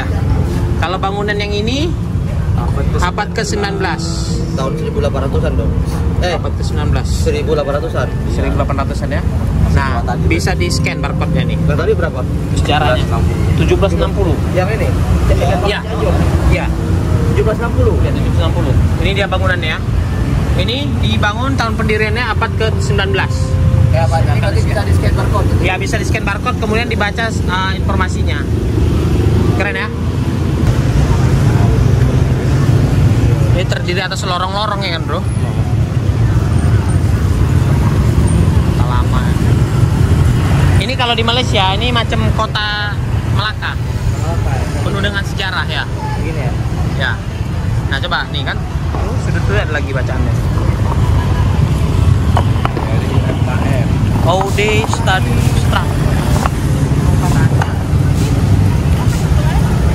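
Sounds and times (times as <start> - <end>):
passers-by voices: 0.0 - 59.9
street ambience rumble: 0.0 - 59.9.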